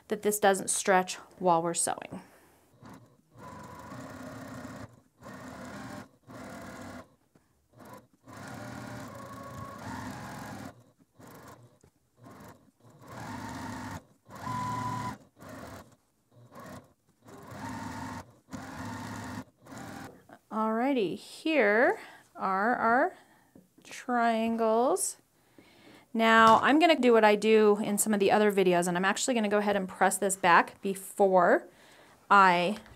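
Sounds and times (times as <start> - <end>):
sewing machine stitching: 2.7 - 20.4.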